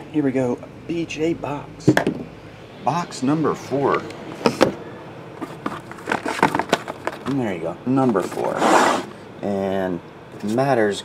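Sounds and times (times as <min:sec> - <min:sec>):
sharp knocks: 0:01.8 - 0:02.3
plastic die tumbling: 0:05.4 - 0:07.4, 0:08.0 - 0:08.6.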